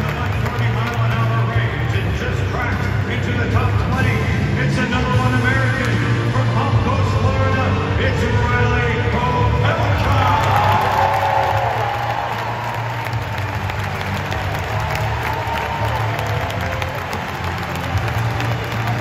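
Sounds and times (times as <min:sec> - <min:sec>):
crowd cheering and applauding: 0:00.0 - 0:02.8, 0:09.5 - 0:19.0
loud music with heavy bass: 0:00.0 - 0:19.0.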